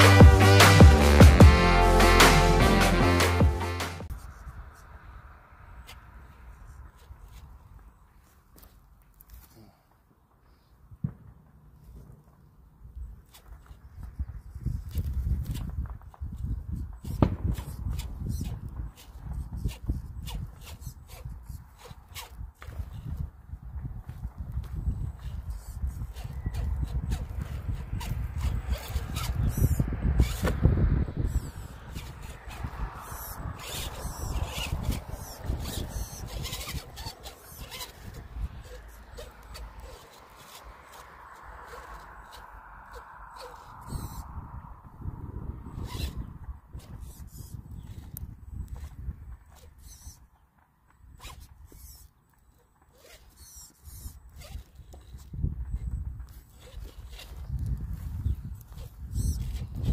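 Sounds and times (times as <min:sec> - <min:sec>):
electric motor and gears whining: 0:00.0 - 0:09.5, 0:13.0 - 0:59.9
wood chips crackling under tyres: 0:31.7 - 0:43.8.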